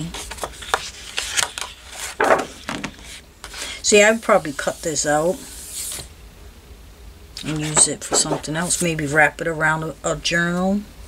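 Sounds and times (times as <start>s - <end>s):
paper rustling and crackling: 0.0s - 3.8s.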